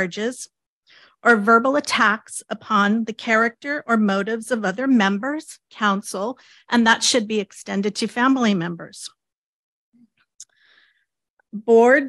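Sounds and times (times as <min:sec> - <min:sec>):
woman speaking: 0:00.0 - 0:00.6, 0:01.2 - 0:09.2, 0:11.5 - 0:12.0.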